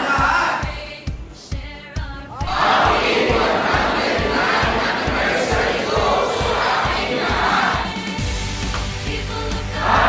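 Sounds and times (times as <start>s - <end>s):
crowd cheering: 2.4s - 8.0s, 9.8s - 10.0s.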